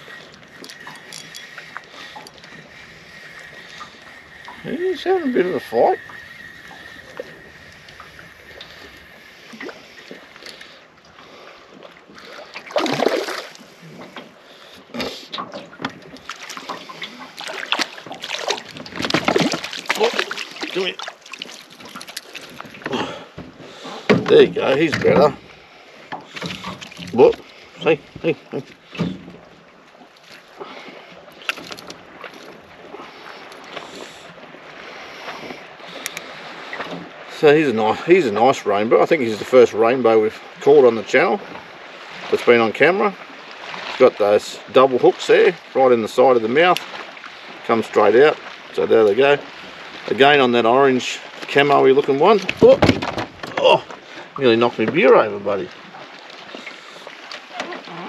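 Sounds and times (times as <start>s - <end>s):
light wind: 0.0s - 58.0s
water splashing against boat: 0.0s - 58.0s
fishing hooks clicking and rattling: 0.6s - 1.6s.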